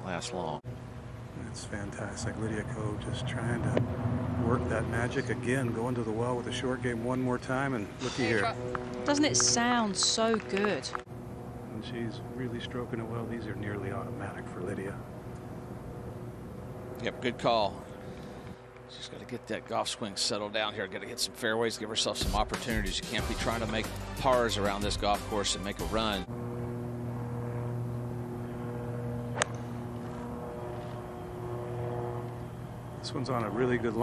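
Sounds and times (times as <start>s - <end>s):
low engine drone: 0.0s - 34.0s
steady low hum: 0.0s - 34.0s
golf club striking ball: 29.3s - 30.2s
putter striking golf ball: 29.4s - 29.7s.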